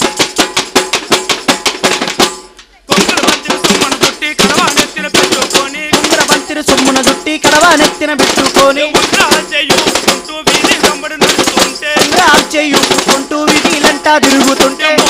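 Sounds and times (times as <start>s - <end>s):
fast frame drumming: 0.0s - 15.0s.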